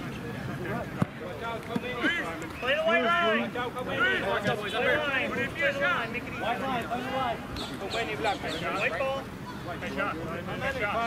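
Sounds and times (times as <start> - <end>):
players shouting calls: 0.6 - 11.0.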